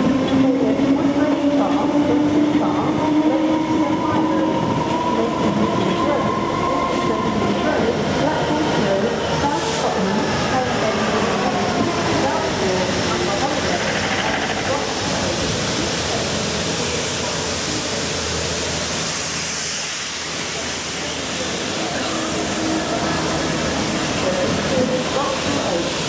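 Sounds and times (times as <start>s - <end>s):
freight train passing slowly: 0.0s - 26.0s.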